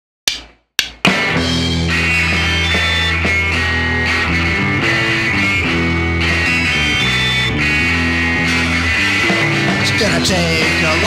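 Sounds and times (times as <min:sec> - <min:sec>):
sharp drum hits: 0:00.3 - 0:01.4
rock band playing: 0:01.0 - 0:11.0.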